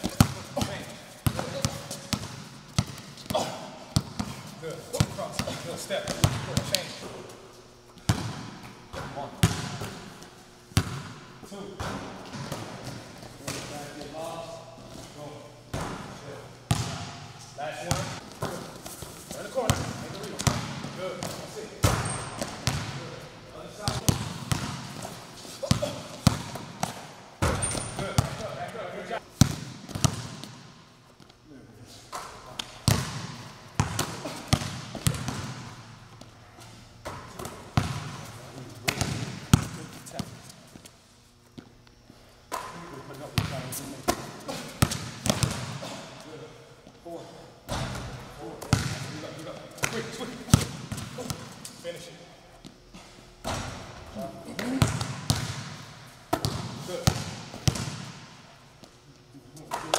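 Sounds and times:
basketballs bouncing on court floor: 0.0s - 7.2s, 8.0s - 14.1s, 15.7s - 23.2s, 23.8s - 28.8s, 29.4s - 30.8s, 32.1s - 36.3s, 37.0s - 40.6s, 42.5s - 46.2s, 47.7s - 51.7s, 53.0s - 58.9s.

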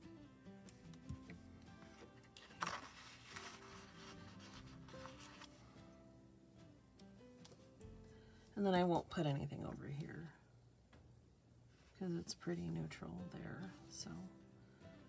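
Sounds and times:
soft background music: 0.0s - 15.0s
paper sticker peeling: 1.8s - 5.5s.

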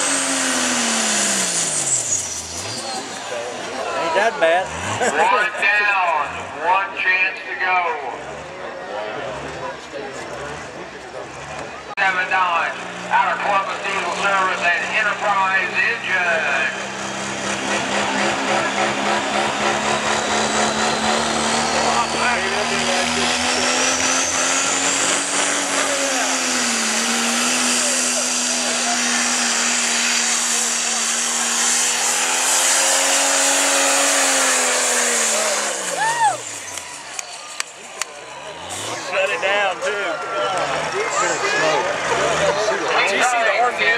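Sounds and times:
diesel engine at full throttle: 0.0s - 43.9s.

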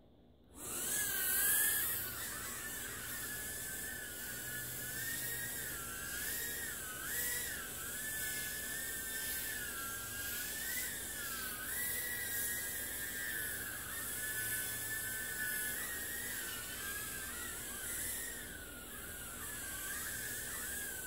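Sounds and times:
small drone propellers whining: 0.5s - 21.0s.

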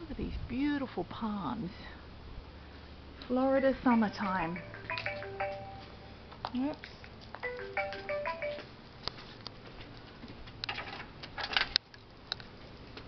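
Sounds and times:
electronic chime tune: 4.0s - 6.1s.

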